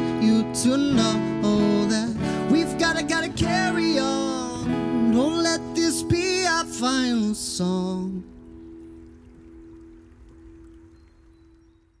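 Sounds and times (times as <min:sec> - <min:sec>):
acoustic guitar chord ringing: 0:00.0 - 0:09.7.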